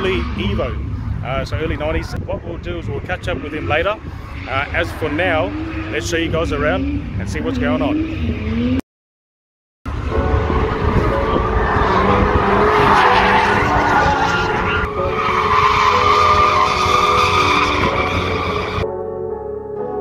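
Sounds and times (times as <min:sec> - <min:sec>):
car engine revving hard: 0:03.5 - 0:08.8, 0:09.9 - 0:18.8
background music: 0:09.9 - 0:20.0
tyre squeal: 0:11.4 - 0:18.8.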